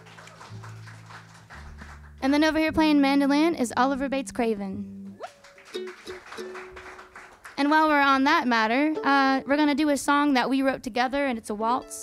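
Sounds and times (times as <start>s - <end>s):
upright bass low notes: 0.0s - 5.2s.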